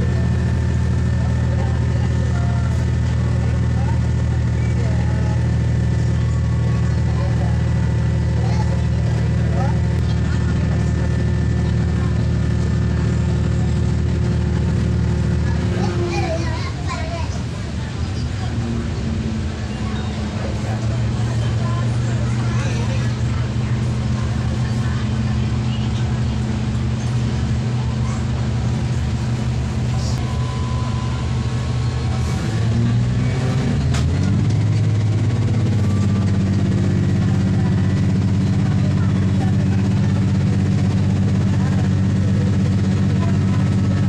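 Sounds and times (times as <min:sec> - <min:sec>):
diesel engine droning: 0:00.0 - 0:44.0
wheel and track noise: 0:00.0 - 0:44.0.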